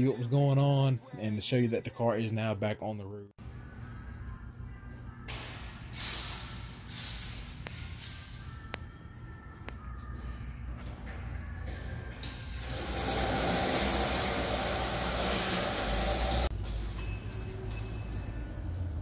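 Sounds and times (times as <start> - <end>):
low workshop hum: 3.4 - 19.0.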